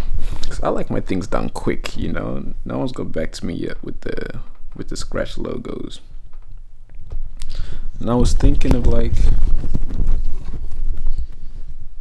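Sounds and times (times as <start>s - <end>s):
camera handling rumble: 8.3s - 11.5s.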